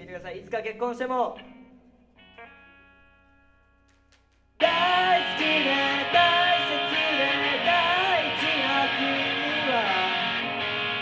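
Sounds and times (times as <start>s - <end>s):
electric guitar plucked notes: 1.3s - 4.0s, 4.6s - 11.0s.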